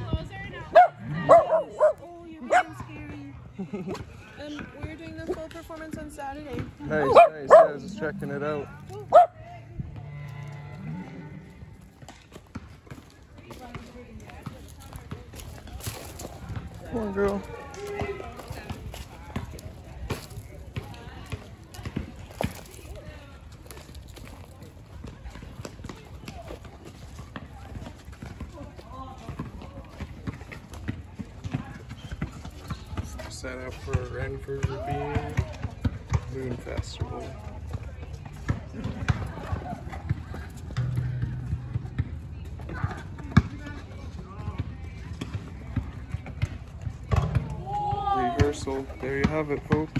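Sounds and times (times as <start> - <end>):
faint distant voices: 0.0 - 49.9
dog barking: 0.7 - 2.8, 7.0 - 8.0, 9.1 - 9.4
footsteps on dry ground: 4.7 - 30.6.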